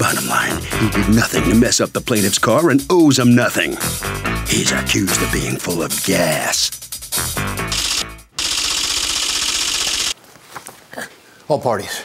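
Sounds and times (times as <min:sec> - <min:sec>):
loud rapid rattling burst: 0:07.7 - 0:10.2.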